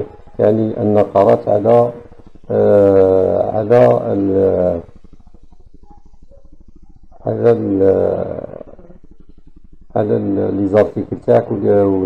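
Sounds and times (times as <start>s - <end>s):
man's drawn-out hesitation sound: 0.0s - 4.9s, 7.2s - 9.0s, 10.0s - 12.0s
faint low pulsing buzz: 0.0s - 12.0s.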